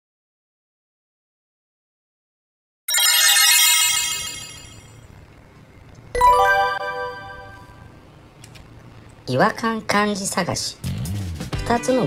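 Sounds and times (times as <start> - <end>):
sparkling synthesized chime: 2.9 - 5.1, 6.2 - 7.9.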